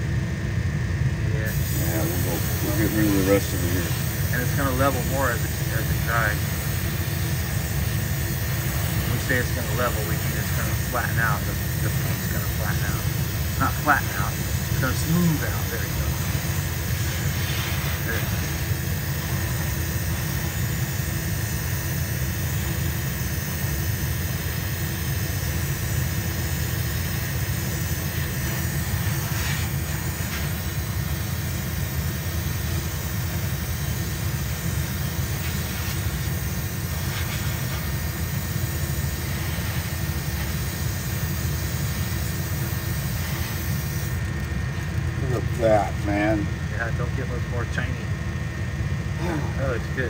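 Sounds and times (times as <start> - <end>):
low machine drone: 0.0 - 50.0
airbrush air hiss: 1.5 - 44.2.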